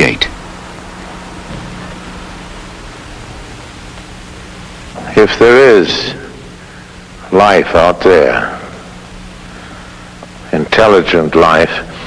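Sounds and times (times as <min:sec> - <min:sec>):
faint low hum: 0:00.0 - 0:12.0
tape hiss: 0:00.0 - 0:12.0.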